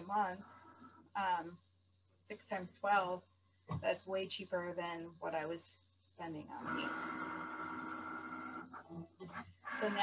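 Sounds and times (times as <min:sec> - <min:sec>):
cutting machine motor whine: 0:06.6 - 0:10.0.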